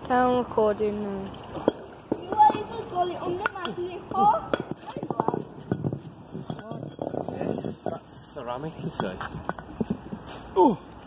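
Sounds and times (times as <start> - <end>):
porcelain clinking on brick paving: 1.4 - 10.4.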